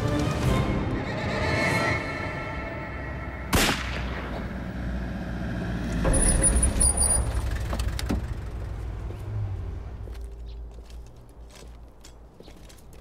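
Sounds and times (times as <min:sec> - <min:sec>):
car engine running: 0:04.5 - 0:10.3
high brake squeal: 0:06.1 - 0:07.6.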